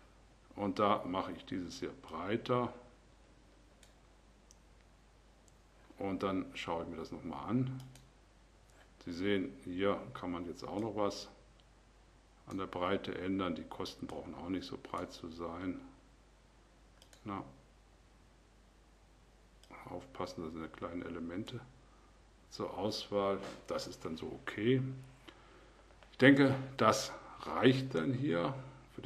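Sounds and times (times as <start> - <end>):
computer mouse clicks: 7.7 - 8.1, 17.0 - 17.2.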